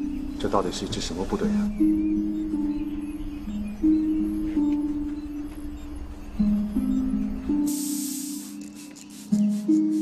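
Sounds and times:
slow plucked music: 0:00.0 - 0:10.0
pressure sprayer hissing: 0:07.6 - 0:10.0.

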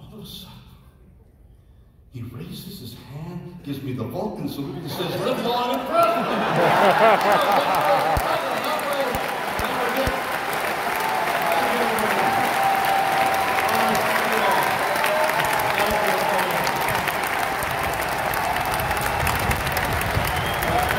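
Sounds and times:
voices in crowd: 0:04.8 - 0:20.9
audience clapping: 0:05.7 - 0:20.9.

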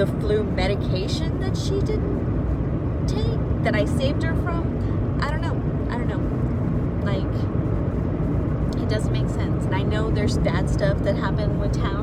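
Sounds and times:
woman speaking: 0:00.0 - 0:02.2, 0:03.1 - 0:06.3, 0:07.0 - 0:07.5, 0:08.7 - 0:12.0
car engine and road noise: 0:00.0 - 0:12.0.

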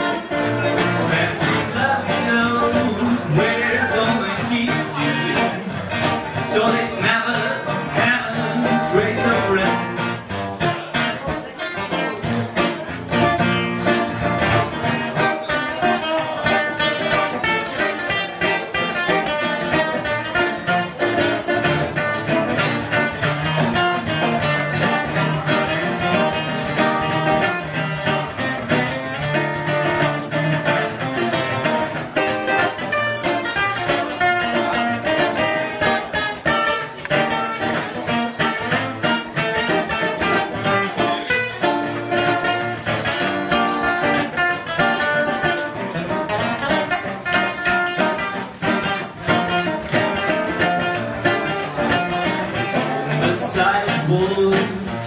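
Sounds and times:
acoustic guitar swing jazz solo: 0:00.0 - 0:55.0.

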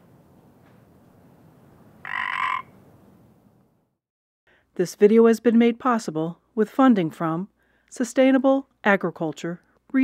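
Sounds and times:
buzzy pitched croak: 0:02.0 - 0:02.8.

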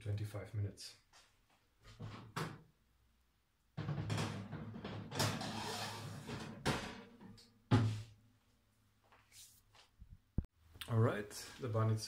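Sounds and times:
knocks on metal tray: 0:03.8 - 0:05.2
oven door shutting: 0:03.8 - 0:07.0
metallic scraping and clattering: 0:03.8 - 0:07.4.

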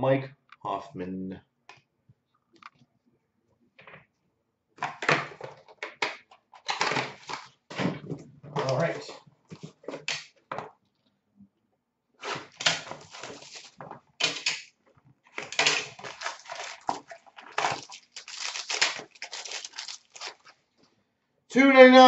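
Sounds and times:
packaging rustling and tearing: 0:06.7 - 0:07.6, 0:12.2 - 0:14.5, 0:15.3 - 0:20.6.

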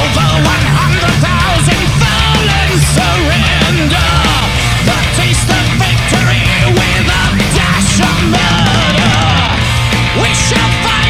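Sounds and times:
heavy metal band playing: 0:00.0 - 0:11.0
man singing: 0:00.0 - 0:11.0.

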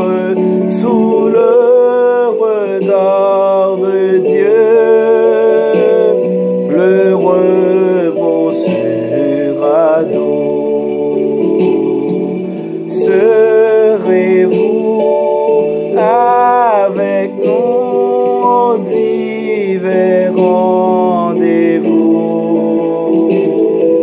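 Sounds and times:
instrumental accompaniment: 0:00.0 - 0:24.0
man singing worship song: 0:00.0 - 0:24.0.

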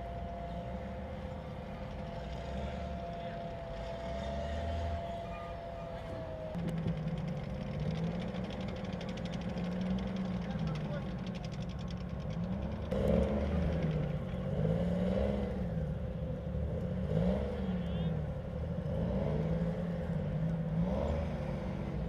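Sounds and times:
diesel engine revving: 0:00.0 - 0:22.0.

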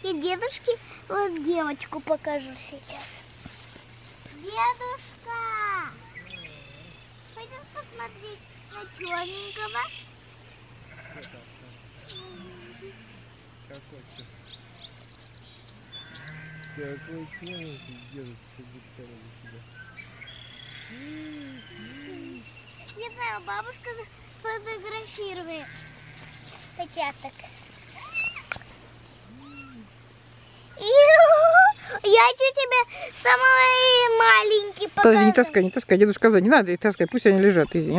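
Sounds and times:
kittens mewing: 0:10.9 - 0:11.4, 0:29.2 - 0:30.0.

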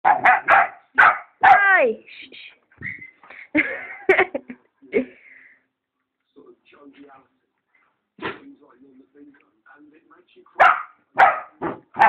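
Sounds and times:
dog barking loudly: 0:00.0 - 0:01.8, 0:10.6 - 0:12.0.

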